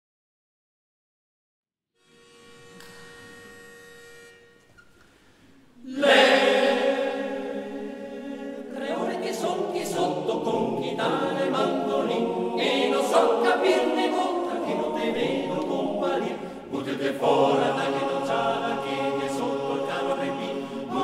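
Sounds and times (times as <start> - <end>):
male choir singing in harmony: 5.8 - 21.0.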